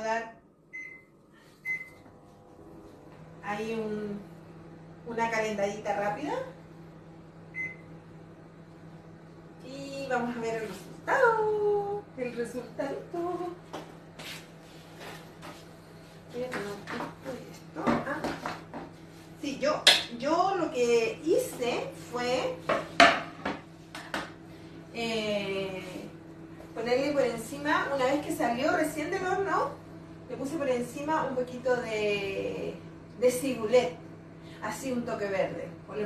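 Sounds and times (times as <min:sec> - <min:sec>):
low steady hum: 0:00.0 - 0:36.0
microwave keypad beep: 0:00.7 - 0:02.1, 0:07.5 - 0:07.9.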